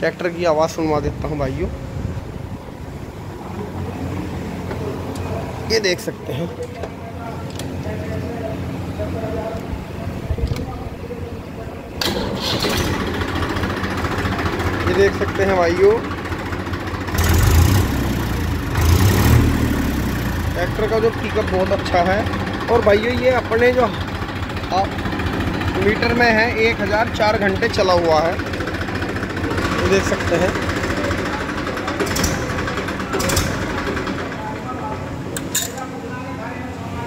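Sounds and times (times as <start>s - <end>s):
tractor diesel engine idling: 11.2s - 36.7s.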